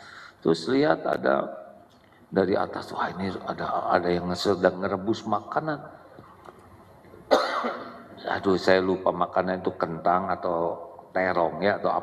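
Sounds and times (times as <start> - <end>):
man coughing: 7.3 - 8.2.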